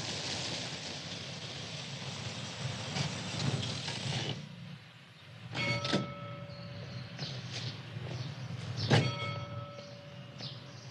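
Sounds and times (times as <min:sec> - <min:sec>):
car engine and road noise: 0:00.0 - 0:10.9
high ringing squeal: 0:05.6 - 0:07.2.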